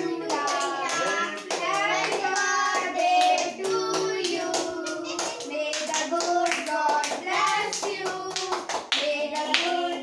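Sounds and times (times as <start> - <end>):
group singing: 0.0 - 10.0
people clapping in time: 0.2 - 10.0.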